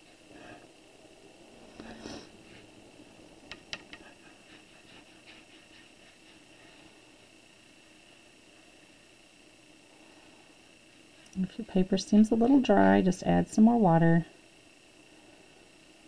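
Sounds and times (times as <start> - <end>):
faint high hum: 0.0 - 16.0
brush working paint on paper: 3.9 - 7.0.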